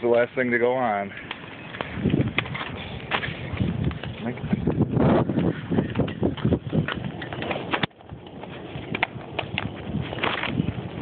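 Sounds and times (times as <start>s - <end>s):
bonfire crackling and popping: 1.1s - 11.0s.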